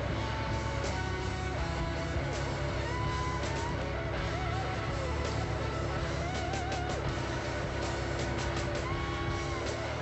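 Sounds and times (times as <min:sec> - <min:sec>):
rock music with electric guitar: 0:00.0 - 0:10.0
vehicle engine running: 0:00.0 - 0:10.0.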